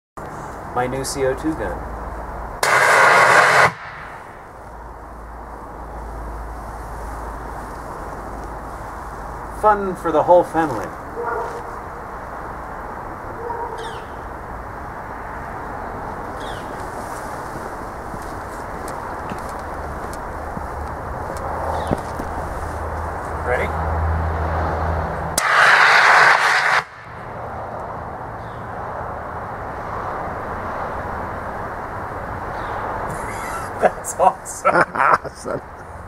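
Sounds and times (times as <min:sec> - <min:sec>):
steady low background hiss: 0:00.2 - 0:02.6
loud gas hiss: 0:02.6 - 0:04.4, 0:25.4 - 0:27.0.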